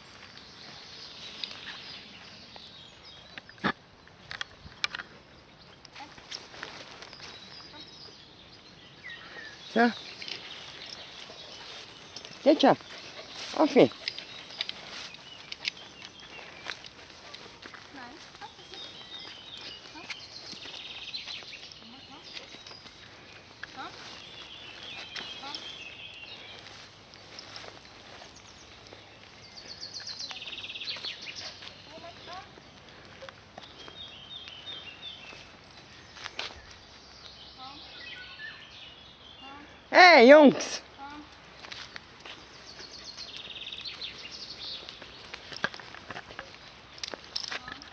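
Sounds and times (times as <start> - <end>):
birds chirping: 0.0 - 47.9
steps rustling through grass: 6.0 - 7.9, 9.6 - 37.4.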